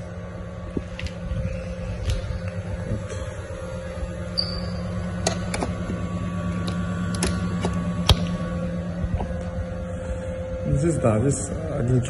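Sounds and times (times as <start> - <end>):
low machine hum: 0.0 - 12.0
thin high tone: 4.2 - 5.1.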